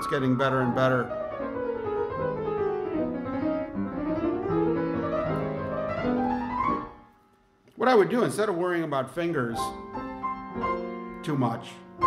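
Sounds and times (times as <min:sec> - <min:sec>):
piano chords held: 0:00.0 - 0:07.1, 0:09.3 - 0:12.0
piano chromatic run: 0:00.0 - 0:07.2, 0:09.5 - 0:12.0.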